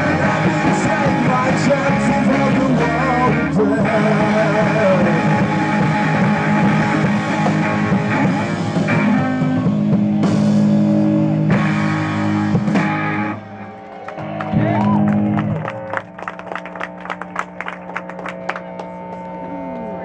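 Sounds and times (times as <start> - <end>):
ringing guitar tones: 0.0 - 14.3
rock band playing loud chords: 0.0 - 19.5.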